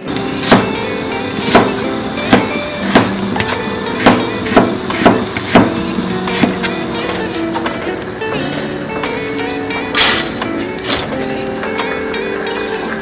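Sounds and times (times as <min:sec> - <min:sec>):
soft background music: 0:00.0 - 0:13.0
knife chopping on plastic board: 0:00.4 - 0:00.8, 0:01.5 - 0:05.8, 0:06.4 - 0:06.7.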